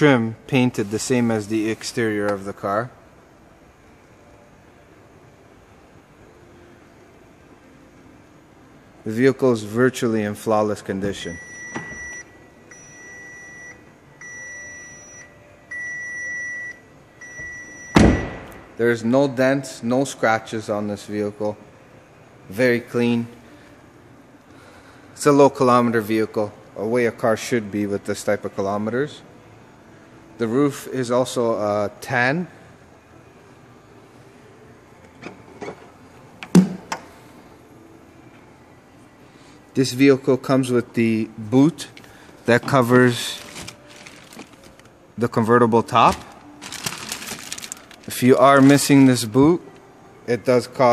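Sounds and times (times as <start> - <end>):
car warning chime beeping: 11.3 - 18.3
car door shutting: 17.4 - 18.6.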